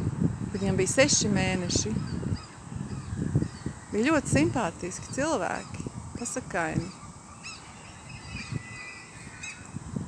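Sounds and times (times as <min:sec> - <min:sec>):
wind buffeting microphone: 0:00.0 - 0:10.0
high-pitched bird calls: 0:01.9 - 0:04.1, 0:06.8 - 0:09.8.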